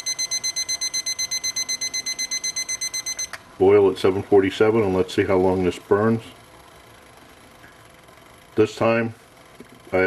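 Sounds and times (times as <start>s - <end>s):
rapid high-pitched alarm beeps: 0.0s - 3.4s.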